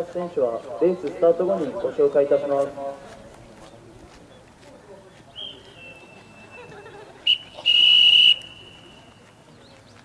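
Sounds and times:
whistle blast: 7.3s - 9.1s.

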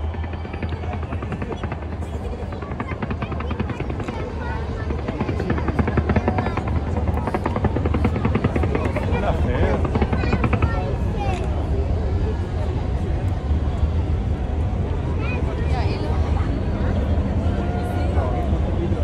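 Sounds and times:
deep fireworks rumble: 0.0s - 17.8s.

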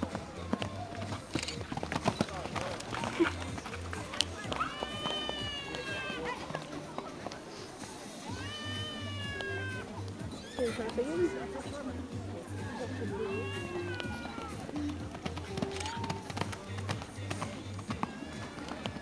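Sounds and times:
faint music with low beat: 0.0s - 19.0s
horse whinnying: 8.3s - 10.8s, 12.6s - 14.6s.

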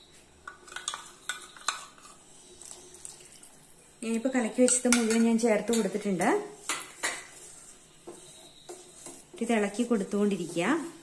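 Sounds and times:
metal spoon scraping pot: 0.5s - 2.3s.

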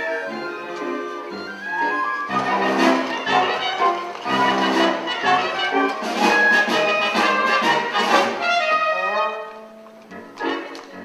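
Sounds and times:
orchestra playing brassy dance music: 0.0s - 11.0s.

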